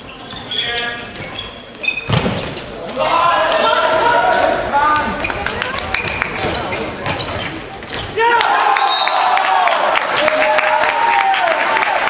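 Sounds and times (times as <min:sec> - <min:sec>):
players shouting in echoing hall: 0:02.7 - 0:12.0.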